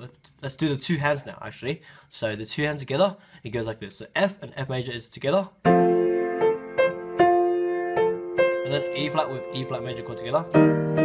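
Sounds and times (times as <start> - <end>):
piano playing chord and notes: 5.6 - 11.0.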